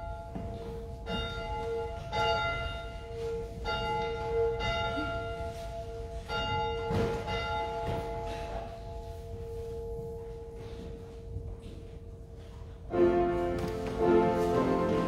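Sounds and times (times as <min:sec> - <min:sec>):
church bell tolling: 0:00.0 - 0:11.0.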